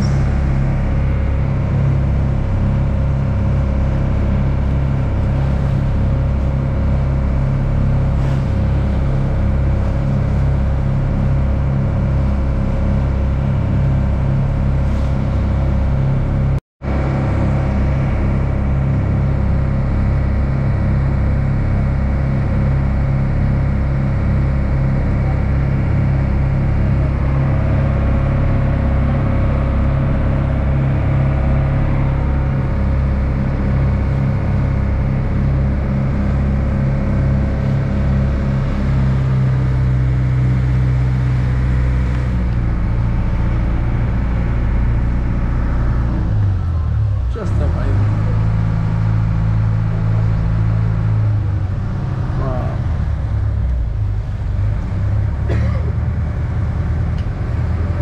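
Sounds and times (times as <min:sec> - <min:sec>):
ferry engine running: 0:00.0 - 0:58.0
water rushing along hull: 0:00.0 - 0:58.0.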